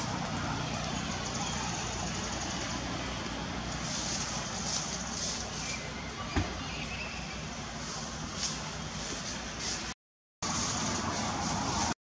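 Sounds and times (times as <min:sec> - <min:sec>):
outdoor background hiss: 0:00.0 - 0:12.0
vehicle engine humming: 0:00.0 - 0:12.0.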